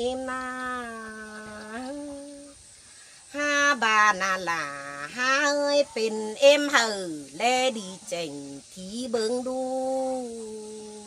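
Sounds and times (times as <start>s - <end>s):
woman singing folk song: 0.0s - 11.0s.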